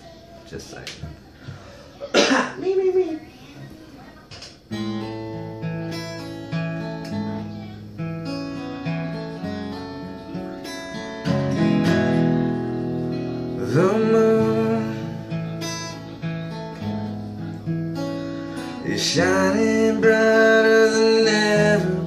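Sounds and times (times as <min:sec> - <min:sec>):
acoustic guitar chords: 0:04.7 - 0:22.0.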